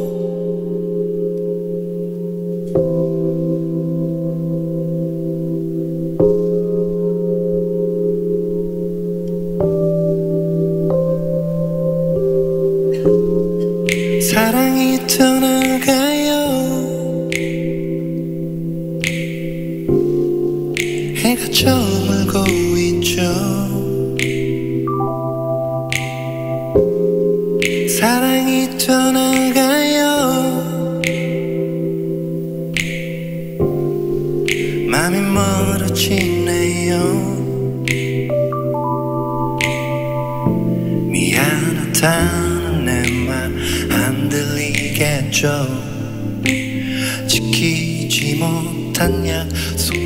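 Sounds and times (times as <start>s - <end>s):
keyboard bell-like chords: 0.0s - 50.0s.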